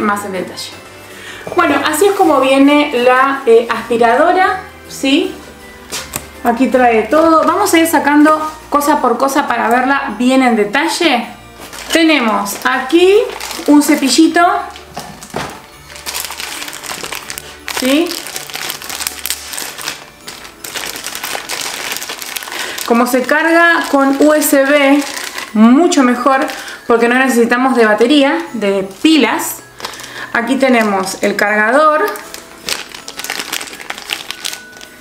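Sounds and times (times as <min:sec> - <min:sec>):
plastic packaging crinkling: 0:11.6 - 0:27.1, 0:28.4 - 0:35.0.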